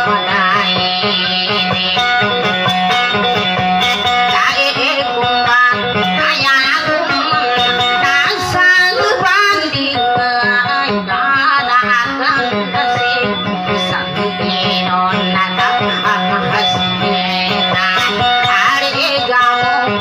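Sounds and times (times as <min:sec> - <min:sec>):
plucked string melody: 0:00.0 - 0:20.0.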